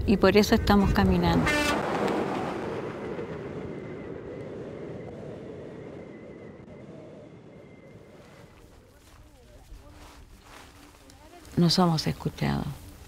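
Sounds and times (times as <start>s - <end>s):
dump truck passing at speed: 0.8s - 7.5s.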